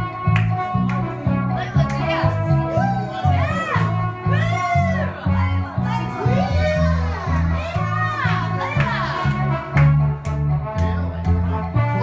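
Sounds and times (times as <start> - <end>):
karaoke backing track: 0.0 - 12.0.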